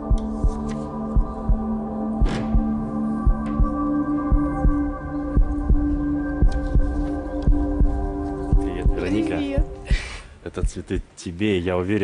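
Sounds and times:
sustained synthesizer chord: 0.0 - 9.6
low heartbeat-like pulse: 0.0 - 11.0.

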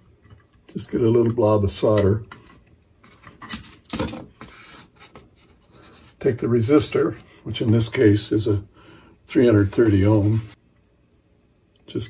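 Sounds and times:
faint scratching: 9.5 - 10.6.

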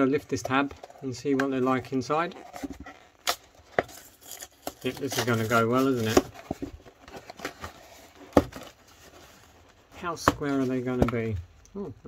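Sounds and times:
cardboard rustling: 0.1 - 11.5
cardboard tearing: 2.3 - 9.2.

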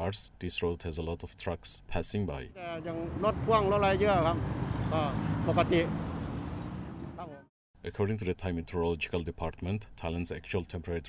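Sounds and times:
man speaking: 0.0 - 6.0, 7.2 - 11.0
road traffic rumble: 2.6 - 7.5
truck going past: 2.6 - 7.5.

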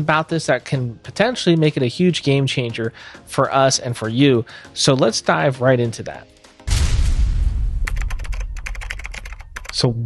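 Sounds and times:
keyboard typing clicks: 7.9 - 9.8.

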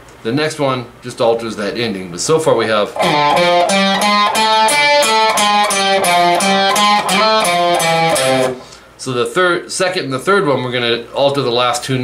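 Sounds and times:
electric guitar riff: 3.0 - 8.8.

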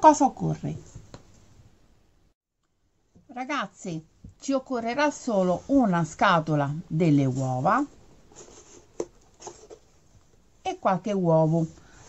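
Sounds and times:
cardboard scraping and rustling: 8.3 - 9.9.

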